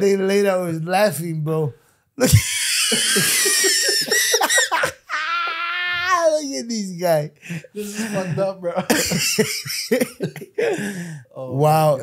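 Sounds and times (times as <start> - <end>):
men laughing hard: 2.2 - 6.4, 7.4 - 11.1
high-pitched squealing giggle: 2.3 - 6.0.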